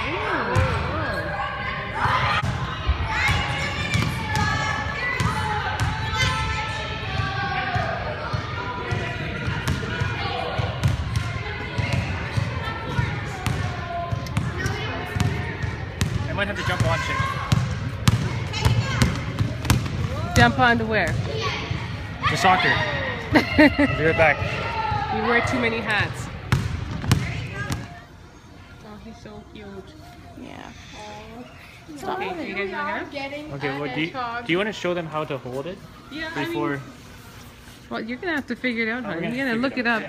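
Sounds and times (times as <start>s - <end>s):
voices in a hall: 0.0s - 40.0s
basketball bouncing: 3.2s - 4.6s, 13.4s - 21.4s, 24.4s - 27.9s
basketball bouncing on wooden floor: 26.5s - 27.8s.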